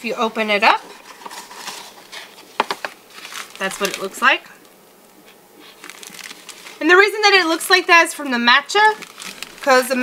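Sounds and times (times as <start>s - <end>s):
cardboard and plastic rustling: 0.8s - 4.3s, 5.6s - 6.8s, 8.8s - 10.0s.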